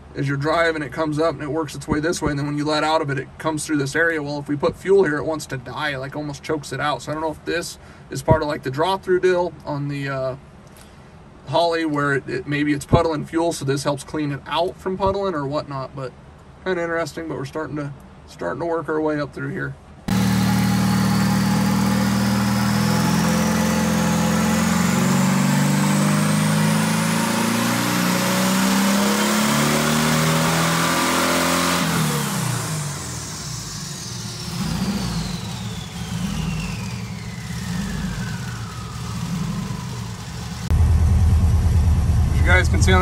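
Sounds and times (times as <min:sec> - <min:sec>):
car engine revving: 0:20.1 - 0:43.0
high whine: 0:20.1 - 0:43.0.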